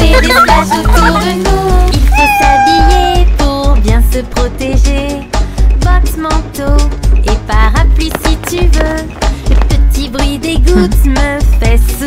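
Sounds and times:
upbeat children's song: 0:00.0 - 0:12.0
cartoon cat meowing: 0:02.1 - 0:03.3.

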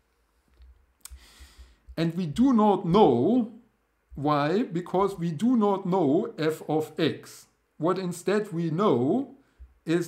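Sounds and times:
inhaled breath hiss: 0:01.0 - 0:02.0
person speaking: 0:01.9 - 0:10.0.

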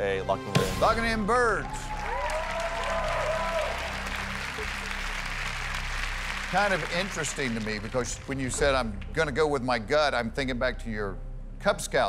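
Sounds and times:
studio audience applauding: 0:01.4 - 0:09.3
low sustained music bed: 0:02.7 - 0:12.0.

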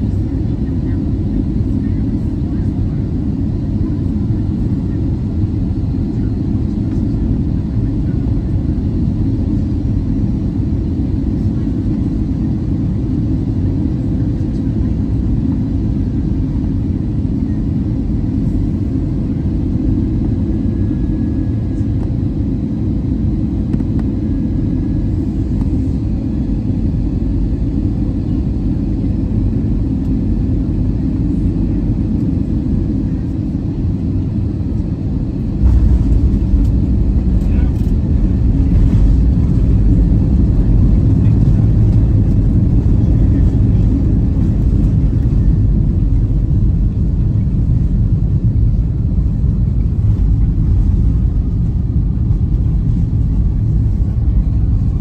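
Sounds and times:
deep rumble of airflow and engines: 0:00.0 - 0:55.0.

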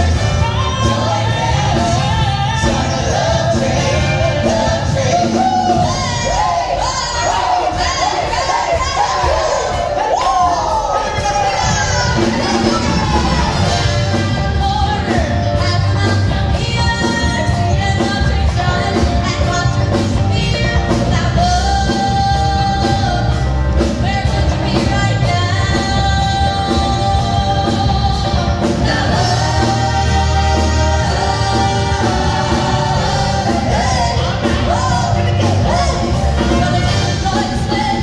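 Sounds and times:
band playing: 0:00.0 - 0:38.0
group shouting and whooping: 0:05.2 - 0:13.6.

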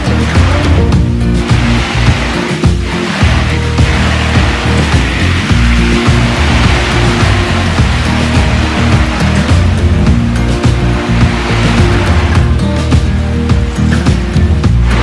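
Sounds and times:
background music with bass: 0:00.0 - 0:15.0.

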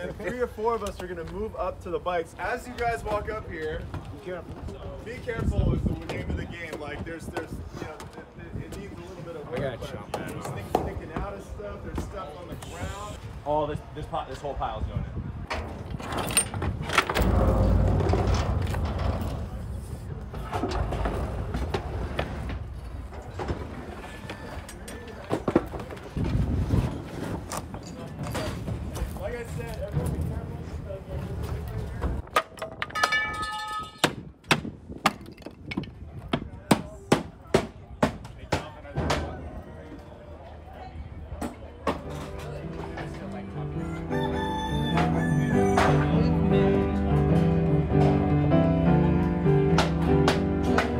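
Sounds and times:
junk thrown into metal dumpster: 0:15.5 - 0:19.8
rooster crowing: 0:43.8 - 0:46.2
upright piano playing: 0:44.8 - 0:50.9.

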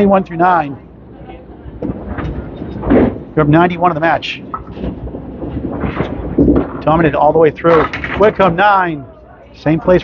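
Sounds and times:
ball rolling on return track: 0:07.6 - 0:08.6.

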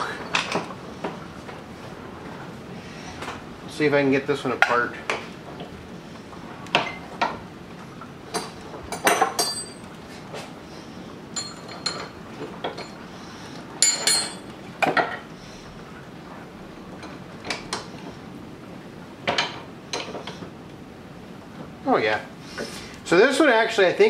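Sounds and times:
wrench clinking on metal: 0:08.4 - 0:09.9, 0:11.4 - 0:12.1, 0:13.8 - 0:14.5.

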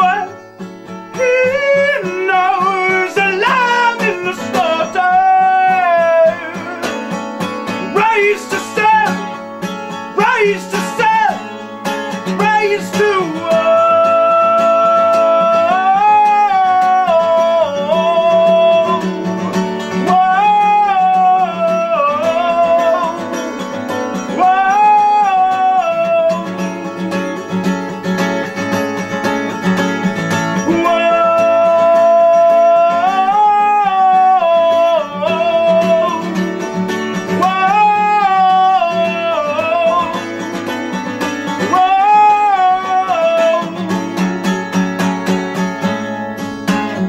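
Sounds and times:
man singing long held notes: 0:00.0 - 0:00.4, 0:01.1 - 0:07.1, 0:07.9 - 0:09.4, 0:10.1 - 0:11.6, 0:12.3 - 0:27.3, 0:30.6 - 0:36.7, 0:37.3 - 0:40.5, 0:41.6 - 0:44.1
strummed acoustic guitar: 0:00.0 - 0:47.0.

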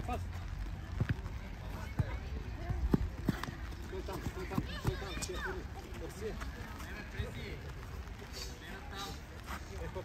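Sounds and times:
football being kicked and bouncing: 0:00.7 - 0:07.4.

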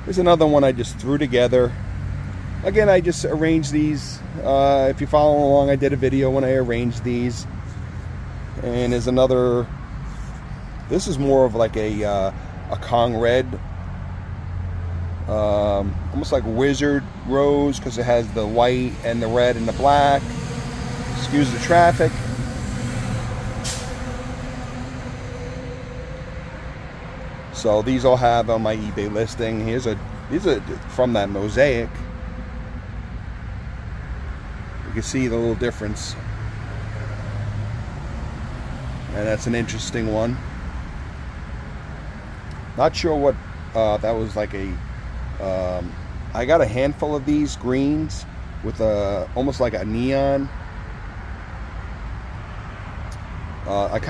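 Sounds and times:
road traffic noise: 0:00.0 - 0:54.0
vehicle engine hum passing: 0:00.0 - 0:54.0
short hiss: 0:23.6 - 0:24.0.

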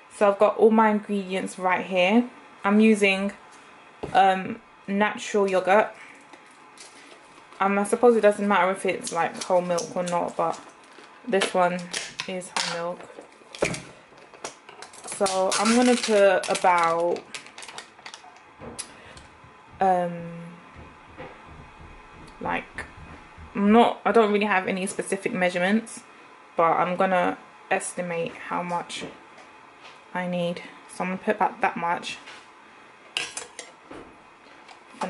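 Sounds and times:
soft knock: 0:18.6 - 0:23.6.

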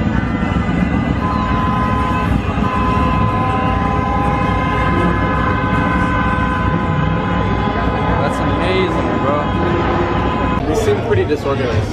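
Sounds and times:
crowd and street rumble: 0:00.0 - 0:11.9
horns sounding long notes: 0:00.0 - 0:11.9.

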